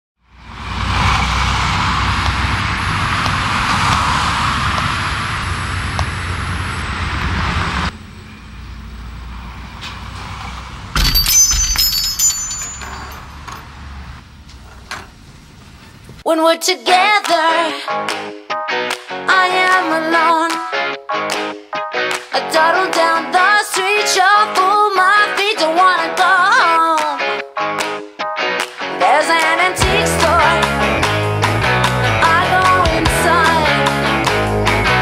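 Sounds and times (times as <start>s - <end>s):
street traffic noise: 0.2s - 16.3s
high bell-like ring: 11.0s - 13.4s.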